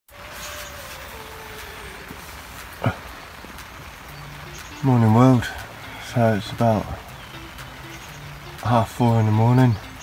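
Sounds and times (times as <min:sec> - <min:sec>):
rain on fabric canopy: 0:00.1 - 0:10.0.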